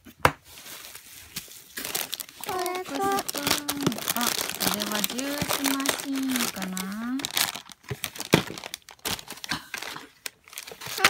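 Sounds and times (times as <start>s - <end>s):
plastic bags and paper crinkling: 0.4s - 11.0s.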